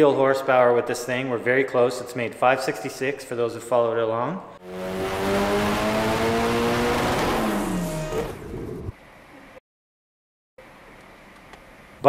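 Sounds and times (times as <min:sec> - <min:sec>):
turbocharged engine at full throttle: 0:04.6 - 0:08.9.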